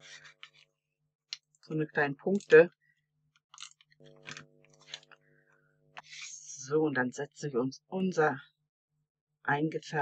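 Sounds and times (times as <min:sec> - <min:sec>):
faint steady hum: 0:00.0 - 0:10.0
glue roller clicks and crackles: 0:03.5 - 0:05.1.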